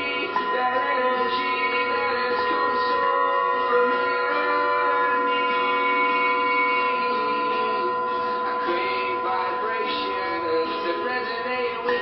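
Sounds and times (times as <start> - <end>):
singing bowls ringing: 0.0 - 12.0.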